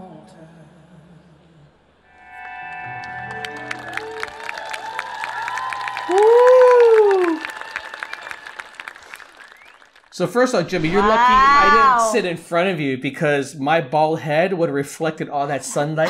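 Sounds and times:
audience applauding: 3.0s - 12.2s
loud cheering call: 3.5s - 9.8s, 10.7s - 12.2s.

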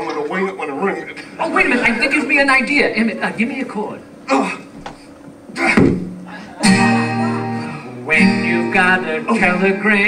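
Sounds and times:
acoustic guitar strummed: 5.9s - 10.0s.

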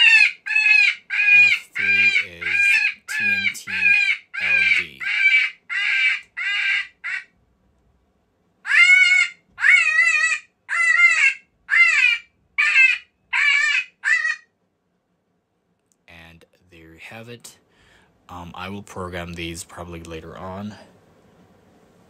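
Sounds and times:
electronic animal calls from speaker: 0.0s - 7.3s, 8.7s - 14.5s.

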